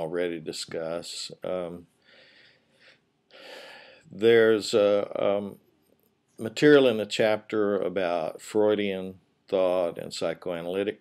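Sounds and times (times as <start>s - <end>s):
man breathing in: 2.0s - 4.1s.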